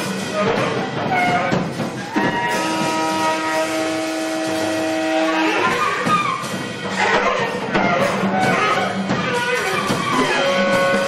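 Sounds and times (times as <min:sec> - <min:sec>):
cymbals and drums: 0:00.0 - 0:11.0
saxophone long note: 0:02.3 - 0:05.8.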